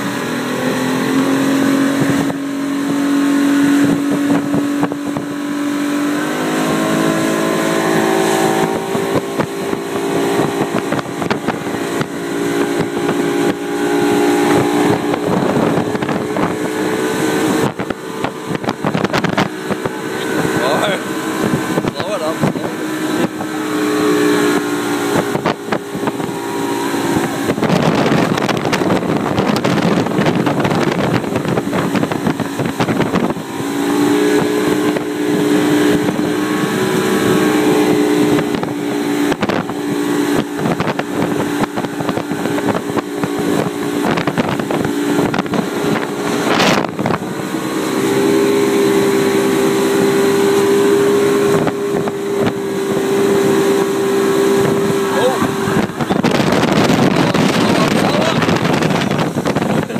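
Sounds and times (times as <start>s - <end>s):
motorboat engine running: 0.0s - 59.9s
wake rushing: 0.0s - 59.9s
wind on microphone: 0.0s - 59.9s.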